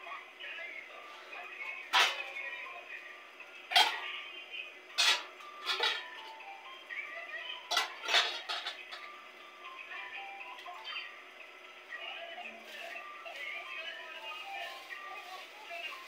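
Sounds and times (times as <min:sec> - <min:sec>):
background music: 0:00.0 - 0:16.0
voices: 0:00.0 - 0:16.0
steel bowls and plates clinking: 0:05.0 - 0:06.0, 0:07.7 - 0:09.1.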